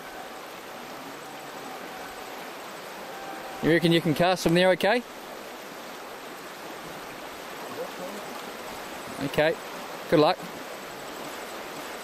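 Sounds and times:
river running over stones: 0.0 - 12.0.

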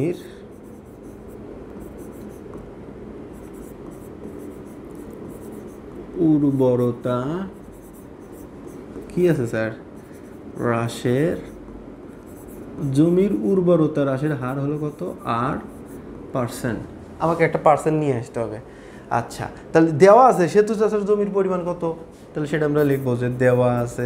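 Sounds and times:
man talking: 0.0 - 0.3, 6.2 - 7.6, 9.1 - 9.8, 10.6 - 11.5, 12.8 - 15.7, 16.4 - 24.0
marker scratching on board: 0.0 - 2.6, 3.3 - 13.4, 14.2 - 16.0, 22.8 - 24.0.

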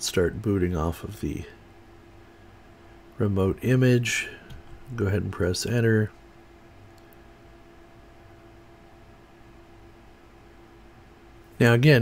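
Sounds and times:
low hum with steady tone: 0.0 - 12.0.

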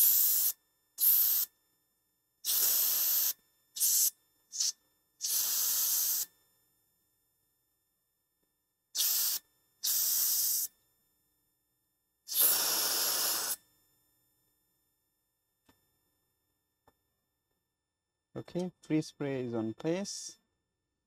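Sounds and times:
aerosol spray hissing: 0.0 - 1.5, 2.4 - 6.3, 9.0 - 10.7, 12.3 - 13.6.

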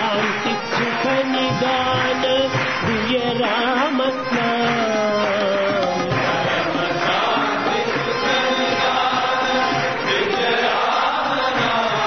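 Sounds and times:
group chanting devotional song: 0.0 - 12.0.

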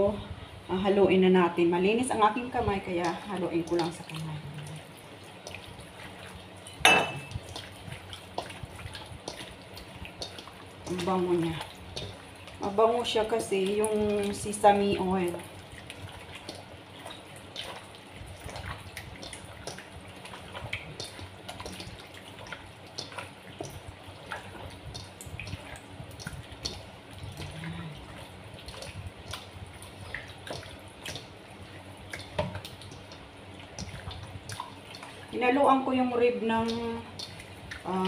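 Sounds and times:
hands squishing wet marinade: 2.0 - 38.0.

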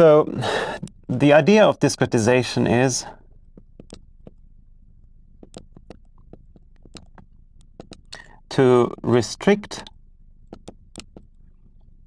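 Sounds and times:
marker writing on glass board: 5.4 - 8.2.

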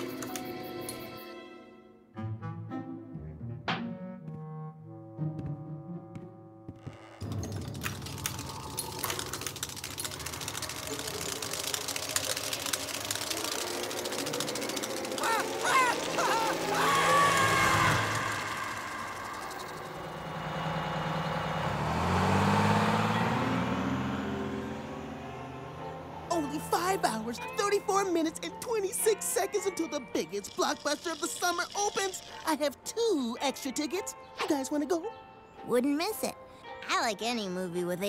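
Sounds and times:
bus engine rising in pitch: 6.8 - 28.6
cartoon music: 7.7 - 20.4, 25.0 - 35.1
cartoon sound effects: 15.1 - 19.9.

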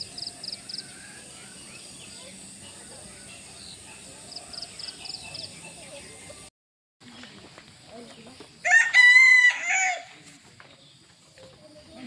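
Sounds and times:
rooster crowing: 8.6 - 10.2.

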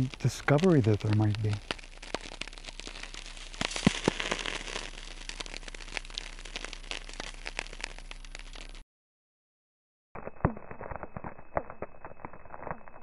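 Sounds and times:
crackling static: 0.0 - 8.8, 10.2 - 13.0.

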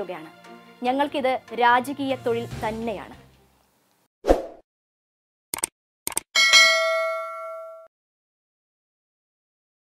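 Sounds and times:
quick double clicks: 5.5 - 6.3
bright bell ding: 6.4 - 7.9.

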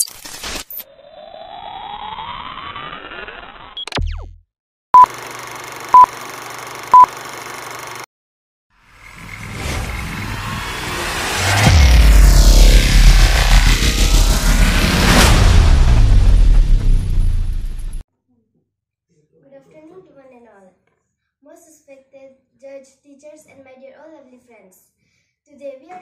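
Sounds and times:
whoosh into low rumble: 8.9 - 18.0
gliding pitch sweep: 9.0 - 16.6.

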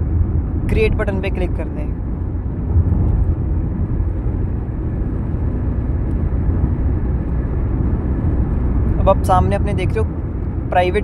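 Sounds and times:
low rumbling background noise: 0.0 - 11.0.

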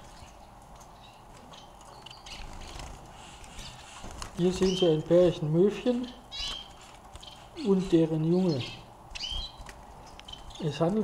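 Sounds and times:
finches chirping: 0.0 - 11.0.

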